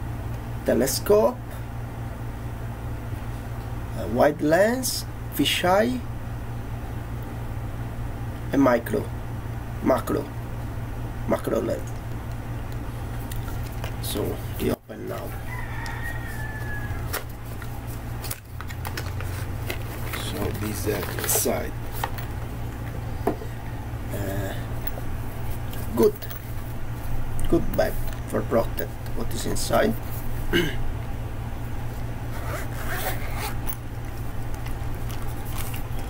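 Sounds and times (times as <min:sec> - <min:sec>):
steady low hum: 0:00.0 - 0:36.0
cardboard clicks and rustles: 0:17.1 - 0:22.5
zipper being pulled open: 0:32.3 - 0:33.8.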